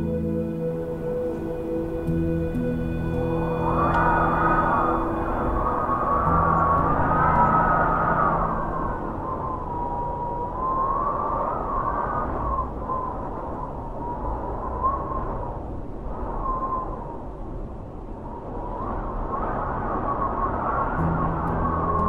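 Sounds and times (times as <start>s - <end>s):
low sustained notes: 0.0s - 14.6s, 21.0s - 22.0s
wind rushing and whistling: 0.0s - 22.0s.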